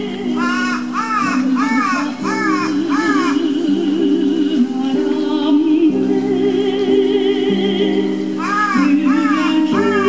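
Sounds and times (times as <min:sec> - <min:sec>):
crow cawing: 0:00.4 - 0:03.4, 0:08.4 - 0:10.0.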